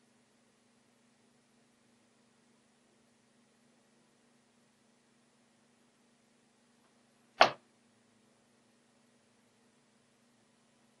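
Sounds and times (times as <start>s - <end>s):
faint steady hum: 0.0s - 11.0s
sharp click: 7.4s - 7.6s.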